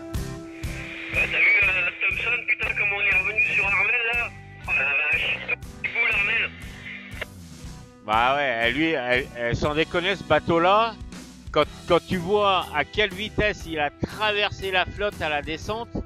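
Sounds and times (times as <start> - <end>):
background music with beat: 0.0 - 15.4
man's voice over radio: 0.8 - 7.2.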